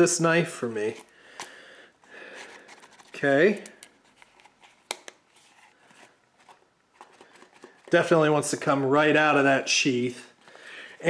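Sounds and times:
leather sheath rustling: 2.3 - 8.0.

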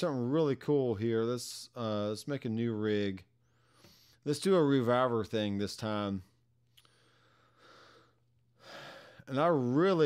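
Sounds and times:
soft breathing: 3.4 - 4.3, 6.8 - 9.3.

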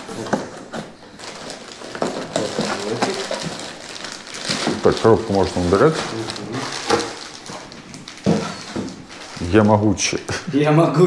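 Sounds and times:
plastic bag rustling: 0.0 - 10.3.

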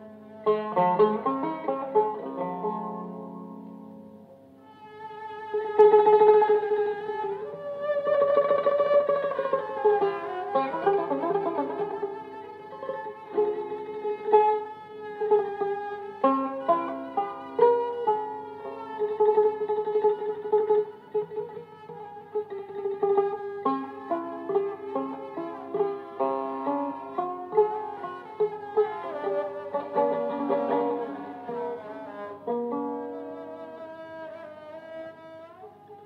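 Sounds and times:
long-necked lute melody: 0.0 - 36.0.

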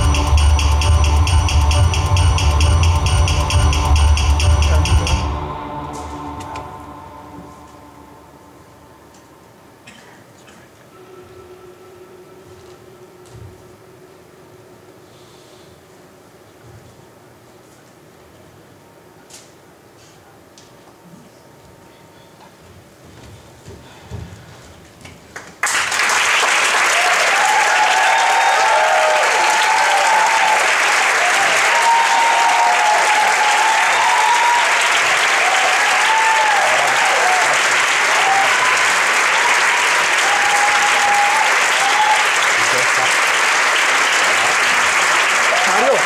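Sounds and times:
audience applauding: 25.4 - 46.0.

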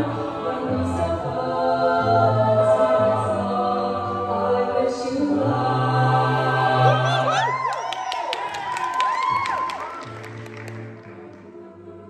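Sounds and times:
vocal group singing: 0.0 - 7.7, 10.0 - 12.0
audience whooping and cheering: 6.9 - 11.4.

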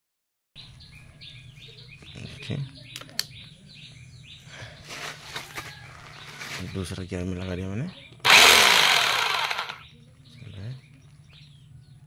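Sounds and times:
small bird chirping: 0.6 - 8.3.

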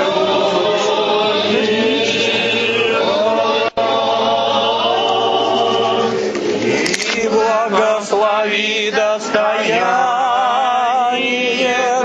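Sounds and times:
voices singing liturgical chant: 0.0 - 12.0.

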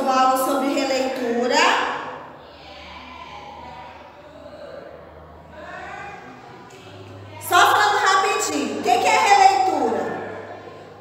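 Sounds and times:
faint indistinct voices: 2.0 - 11.0.

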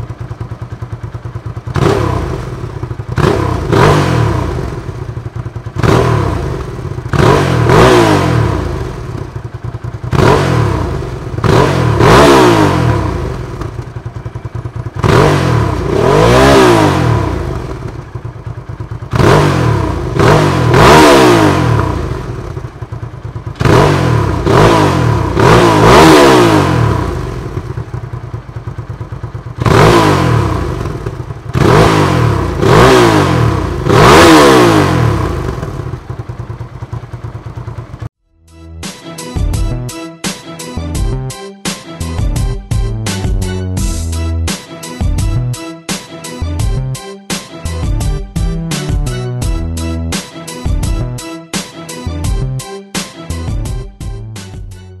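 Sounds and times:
motorcycle engine idling: 0.0 - 38.2
motorcycle engine revving: 0.0 - 38.2.

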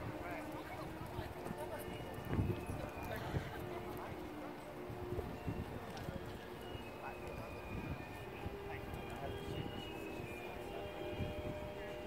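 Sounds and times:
hooves trotting on sand: 0.0 - 4.5.

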